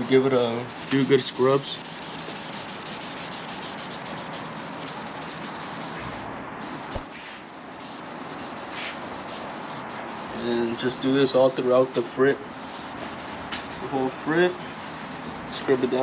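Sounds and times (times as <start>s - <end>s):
pad scrubbing on glass: 0.0s - 16.0s.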